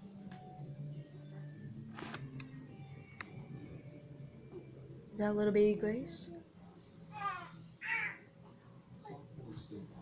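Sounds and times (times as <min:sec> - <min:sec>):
quiet music from television: 0:00.0 - 0:10.0.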